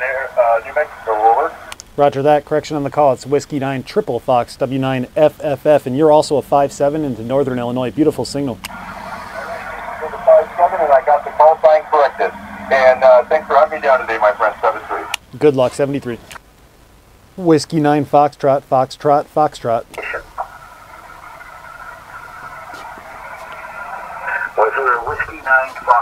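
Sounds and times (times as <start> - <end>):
distant voice over radio: 0.0 - 1.7, 8.7 - 15.2, 21.3 - 26.0
radio static hiss: 0.0 - 26.0.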